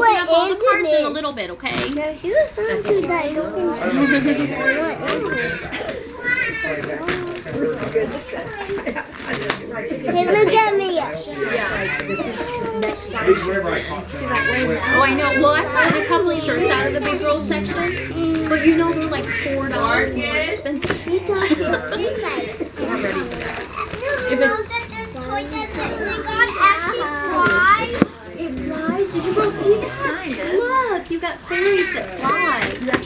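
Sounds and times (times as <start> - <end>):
young children chattering: 0.0 - 33.0.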